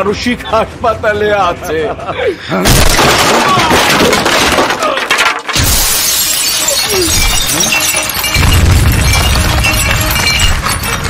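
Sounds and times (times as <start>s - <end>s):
glass shattering: 2.6s - 11.0s
tinkling glass shards: 5.6s - 11.0s.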